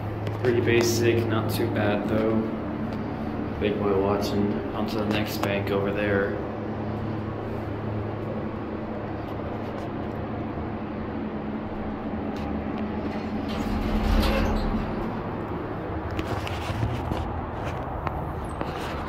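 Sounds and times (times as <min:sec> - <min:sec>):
elevator humming: 0:00.0 - 0:16.6
elevator doors sliding open: 0:11.7 - 0:16.8.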